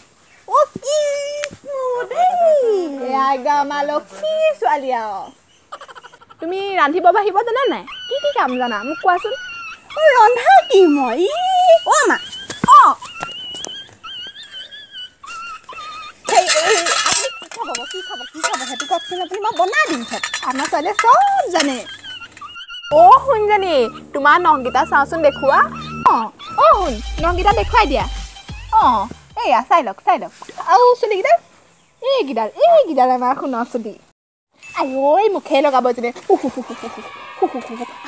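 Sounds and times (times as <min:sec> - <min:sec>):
woman talking animatedly: 0:06.4 - 0:09.4, 0:10.0 - 0:13.0, 0:16.3 - 0:21.9, 0:22.9 - 0:28.2, 0:28.8 - 0:31.4, 0:34.8 - 0:38.0
steady low hum: 0:22.9 - 0:26.1
thin high whine: 0:22.9 - 0:26.1.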